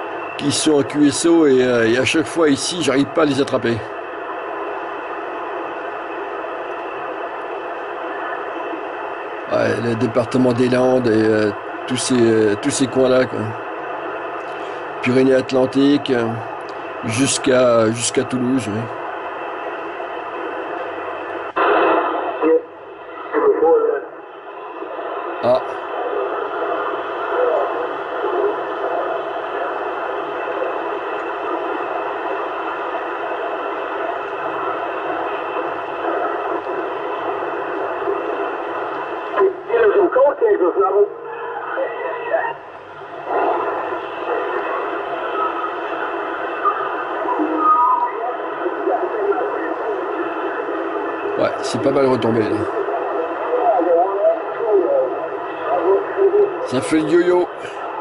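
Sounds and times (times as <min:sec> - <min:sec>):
distant radio voices: 0:00.0 - 0:58.0
radio static hiss: 0:00.0 - 0:58.0.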